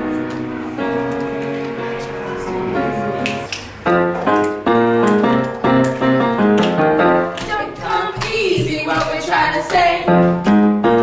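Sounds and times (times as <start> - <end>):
piano chords: 0.0 - 11.0.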